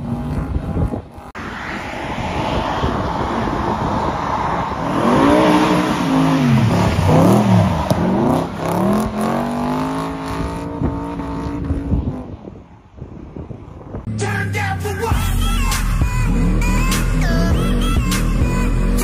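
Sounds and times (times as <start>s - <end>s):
car engine revving hard: 3.4s - 12.2s.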